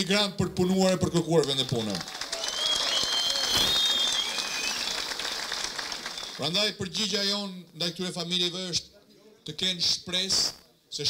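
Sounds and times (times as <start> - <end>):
audience applauding: 1.4 - 6.5
thin high whistling tone: 2.5 - 4.9.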